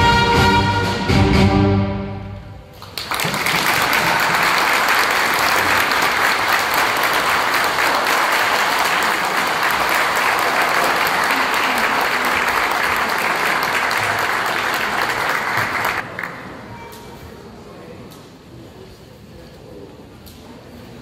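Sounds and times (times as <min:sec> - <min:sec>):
audience applauding: 0:02.7 - 0:16.6.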